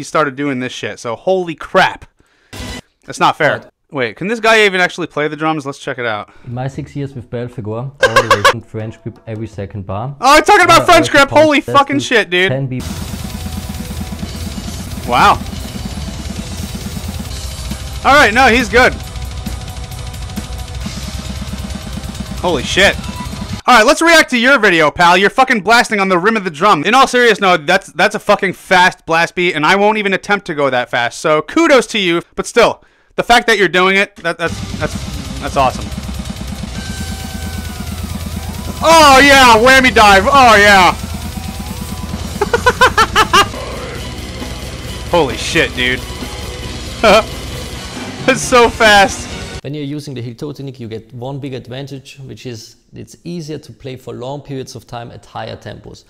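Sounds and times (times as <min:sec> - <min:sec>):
drum kit blast beat: 0:12.8 - 0:23.7, 0:34.5 - 0:49.6
electric guitar: 0:34.5 - 0:49.6
guitar bent notes burst: 0:34.5 - 0:49.6.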